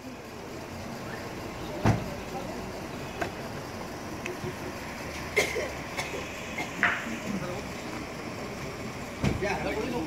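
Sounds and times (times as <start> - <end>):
street noise: 0.0 - 10.0
sharp thump: 1.8 - 2.1, 9.2 - 9.4.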